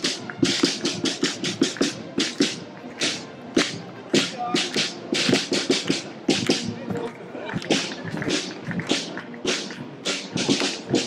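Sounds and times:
faint crowd background: 0:00.0 - 0:11.0.

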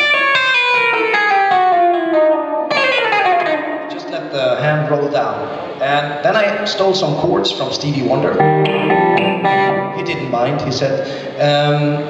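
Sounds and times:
electric guitar tapping runs: 0:08.4 - 0:10.2.

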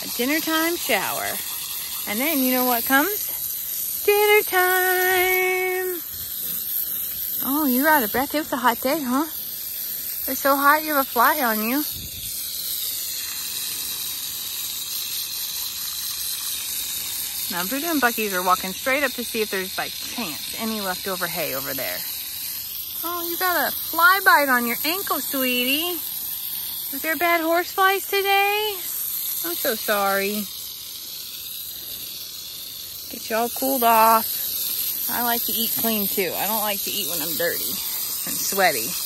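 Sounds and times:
hose nozzle spraying water: 0:00.0 - 0:39.0.

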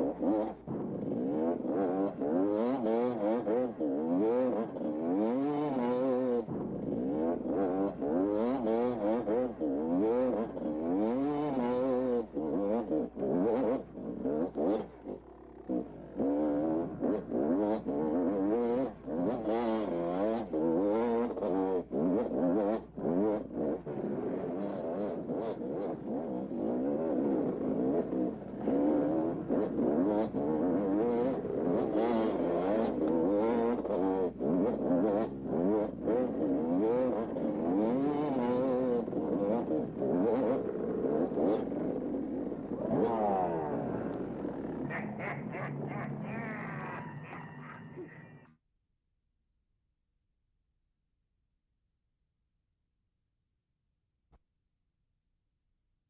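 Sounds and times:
dirt bike engine revving: 0:00.0 - 0:48.5.

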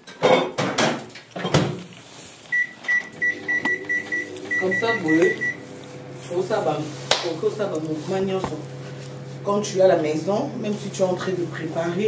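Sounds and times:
microwave oven beeping: 0:02.5 - 0:12.0.

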